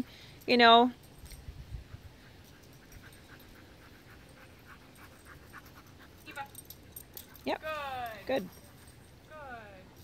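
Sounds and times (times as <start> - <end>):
dog panting: 1.8 - 9.2.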